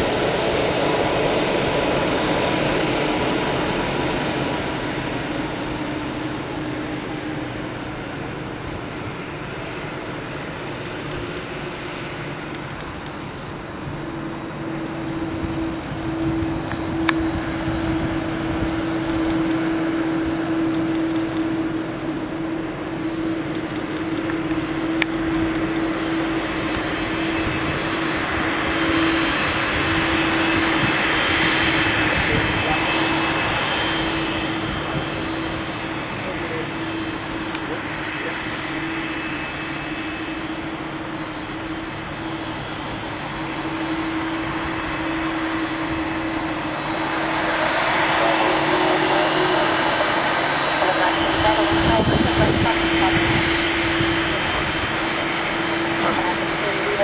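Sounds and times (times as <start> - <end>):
jet engines whining: 0.0 - 57.0.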